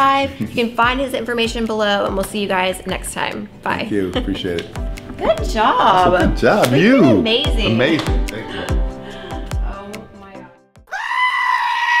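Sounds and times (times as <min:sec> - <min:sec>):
background music: 0:00.0 - 0:10.9.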